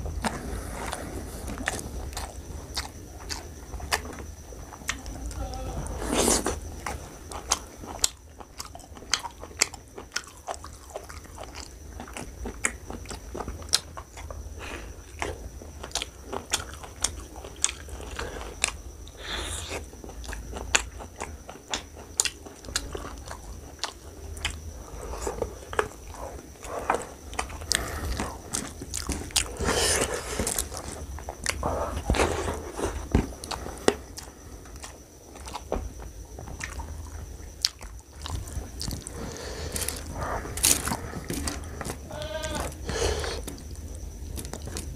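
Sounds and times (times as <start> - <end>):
wet chewing and mouth smacks: 6.4 - 14.4, 19.7 - 24.7.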